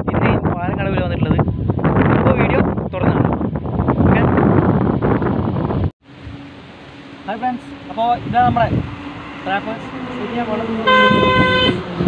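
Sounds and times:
horn sounding steady note: 6.2s - 12.0s.

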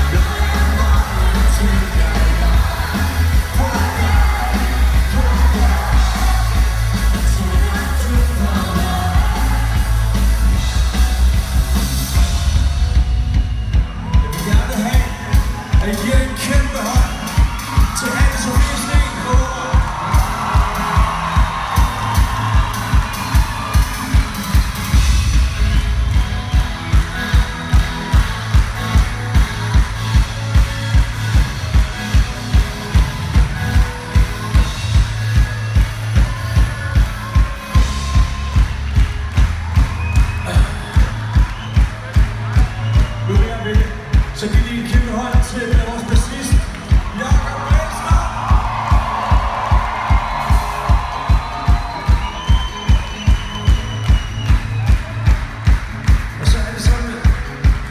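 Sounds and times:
drum kit: 0.0s - 57.9s
live rock band: 0.0s - 57.9s.

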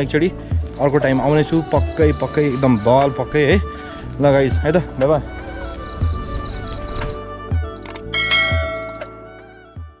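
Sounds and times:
background music with bass beats: 1.8s - 9.2s
bright bell chime: 8.2s - 9.2s.

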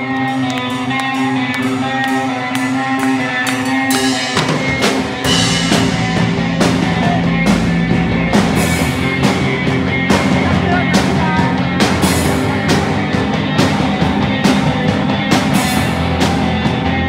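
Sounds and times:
live rock band: 0.0s - 17.0s.

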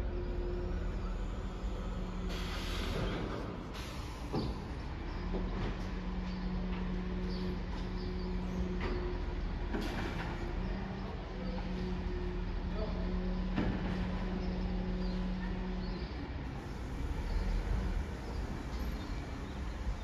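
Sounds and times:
low engine-like drone: 0.0s - 20.0s
traffic rumble: 0.0s - 20.0s.

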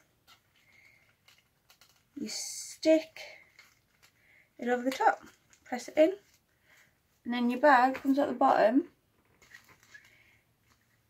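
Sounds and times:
plastic rustling: 0.0s - 7.0s, 9.1s - 11.0s.

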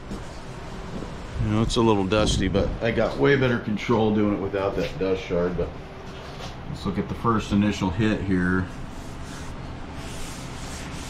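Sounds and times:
wet sponge wiping concrete: 8.7s - 11.0s.

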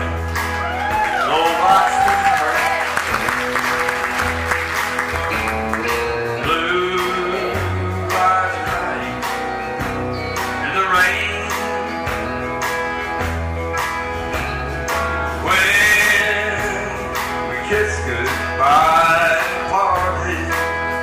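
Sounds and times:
country band playing: 0.0s - 21.0s
sliding lead guitar line: 0.0s - 21.0s.

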